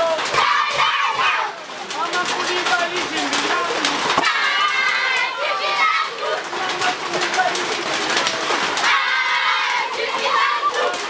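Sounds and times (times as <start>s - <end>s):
children singing and shouting: 0.0s - 2.6s, 3.3s - 11.0s.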